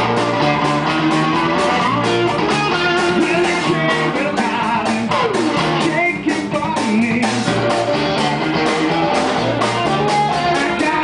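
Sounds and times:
drums: 0:00.0 - 0:11.0
electric guitar bending notes: 0:00.0 - 0:11.0.

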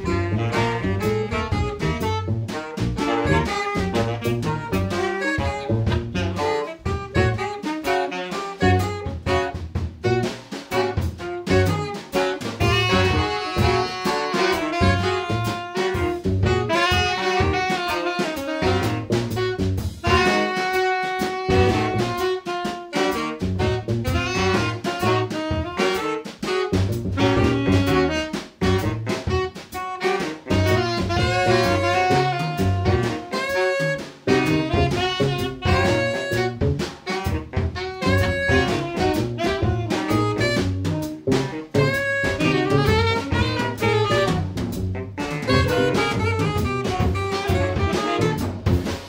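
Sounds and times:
drums: 0:00.0 - 0:49.0
guitar: 0:00.0 - 0:49.0
saxophones playing punchy chords: 0:00.0 - 0:49.0.

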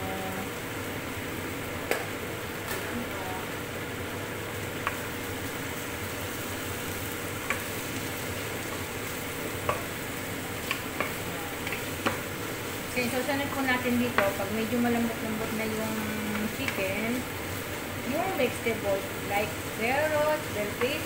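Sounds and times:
chicken and onions sizzling in oil: 0:00.0 - 0:21.0.

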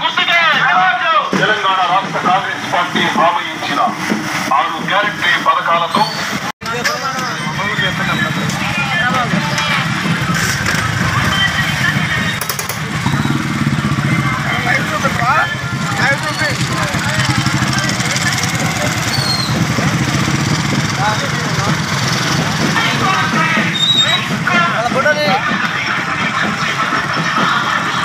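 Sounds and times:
motorcycle engines droning: 0:01.4 - 0:28.0
people calling out: 0:05.7 - 0:20.9, 0:21.8 - 0:28.0.

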